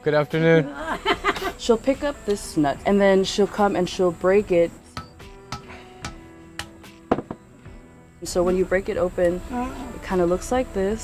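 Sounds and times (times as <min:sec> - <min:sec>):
soft background music: 0:00.0 - 0:11.0
hammer cracking nuts: 0:05.0 - 0:07.4.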